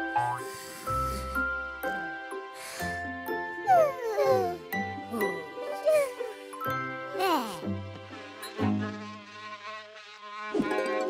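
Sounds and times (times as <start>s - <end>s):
cartoon insect buzzing: 9.0s - 10.7s.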